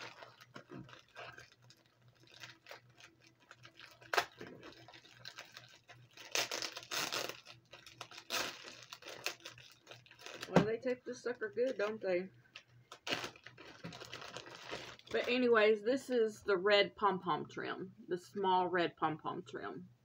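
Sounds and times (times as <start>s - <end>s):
plastic bag crinkling: 0.0s - 15.6s.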